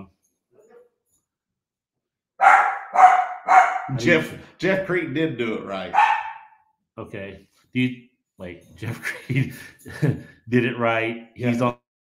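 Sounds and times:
dog barking: 2.4 - 4.0, 5.9 - 6.6.

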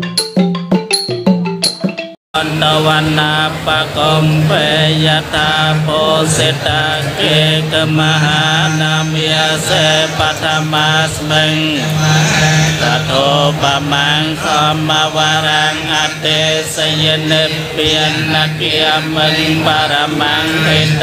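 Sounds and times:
monks chanting through loudspeaker: 2.4 - 21.0.

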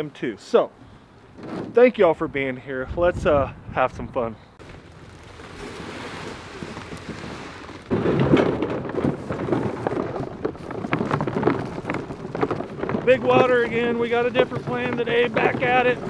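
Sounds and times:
wind rumbling on microphone: 2.7 - 16.0
clothing rustling: 4.6 - 12.8
plastic decoys knocking: 6.6 - 16.0.

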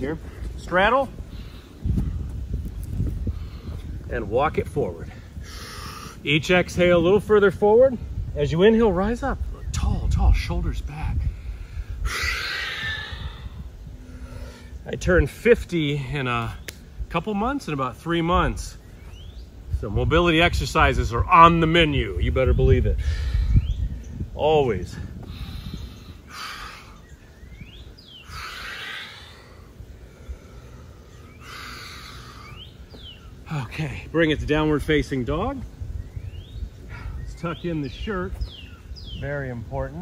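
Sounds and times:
person breathing out slowly: 11.3 - 14.8, 25.2 - 27.1, 28.2 - 32.6
man exhaling: 11.4 - 14.7.

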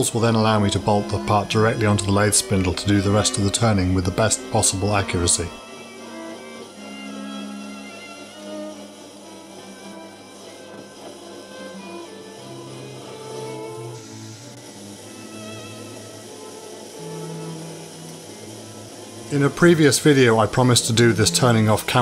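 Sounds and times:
classical string trio music: 0.0 - 22.0.

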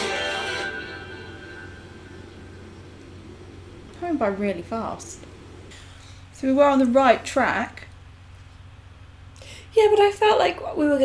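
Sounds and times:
faint song notes: 0.0 - 4.1
steady low hum: 0.0 - 11.0.

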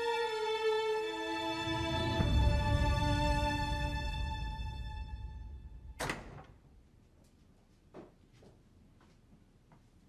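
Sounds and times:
sustained music notes: 0.0 - 6.0.

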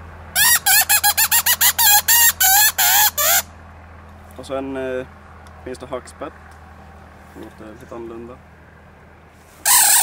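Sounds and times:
fox call high wavering squeals: 0.3 - 3.5, 9.6 - 10.0.

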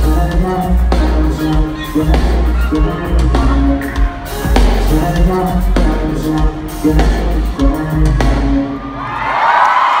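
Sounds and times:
person singing: 0.0 - 8.8
live rock band playing: 0.0 - 9.0
crowd cheering and whooping: 8.6 - 10.0.

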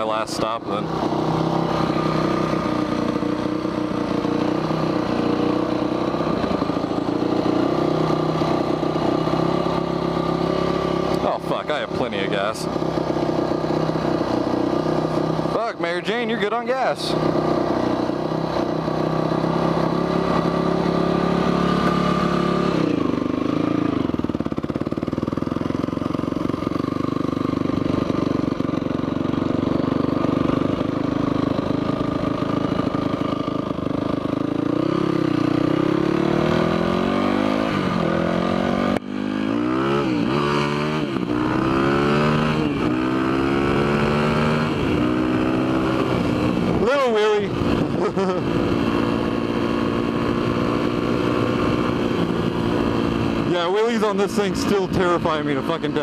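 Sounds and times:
dirt bike engine: 0.0 - 56.0.

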